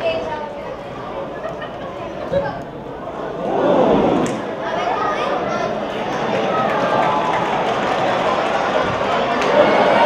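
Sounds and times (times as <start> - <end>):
crowd chattering: 0.0 - 10.0
crowd shouting: 3.0 - 10.0.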